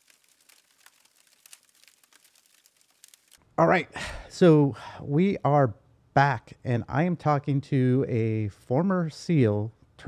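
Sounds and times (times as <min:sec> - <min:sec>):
faint crackling clicks: 0:00.0 - 0:03.4.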